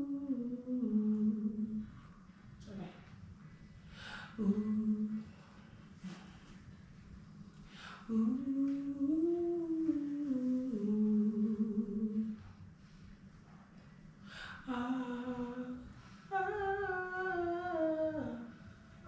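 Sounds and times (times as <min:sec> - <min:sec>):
woman singing wordless vocals: 0:00.0 - 0:02.0, 0:04.2 - 0:05.5, 0:07.7 - 0:12.5, 0:14.4 - 0:18.8.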